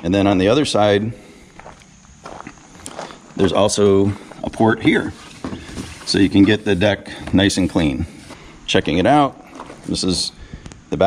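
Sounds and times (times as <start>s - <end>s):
footsteps on gravel: 1.2s - 8.5s.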